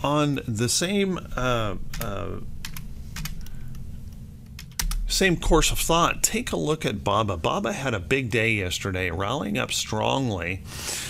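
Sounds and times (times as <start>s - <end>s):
low steady hum: 0.0s - 11.0s
computer keyboard typing: 1.9s - 3.5s, 4.6s - 5.0s.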